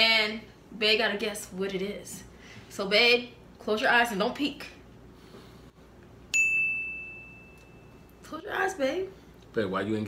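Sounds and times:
bright bell-like ding: 6.3s - 8.2s.

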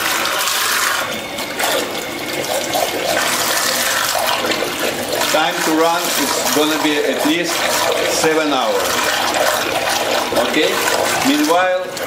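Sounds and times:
underwater thruster churning water: 0.0s - 12.0s.

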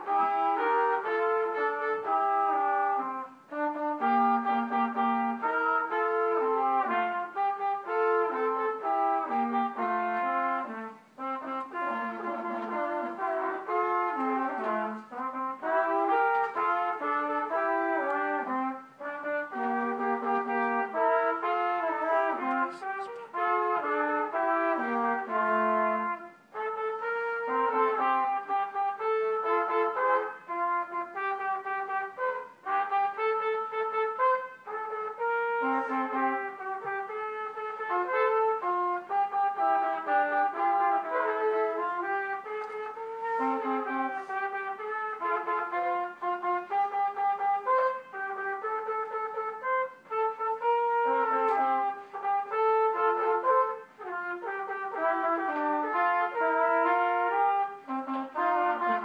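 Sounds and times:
trumpets playing a duet: 0.0s - 59.0s.

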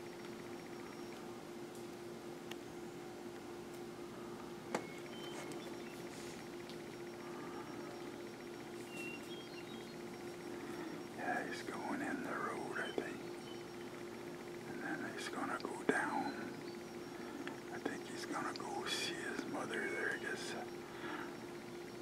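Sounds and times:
steady low hum: 0.0s - 22.0s
person whispering: 11.2s - 13.2s, 14.7s - 16.5s, 17.7s - 20.7s.

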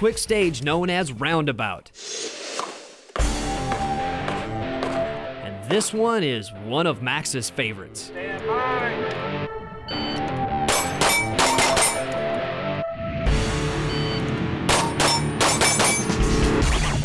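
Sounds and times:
background music: 3.2s - 17.0s
steel targets ringing: 10.7s - 12.2s, 14.7s - 16.2s
pistol shots: 14.7s - 16.2s.

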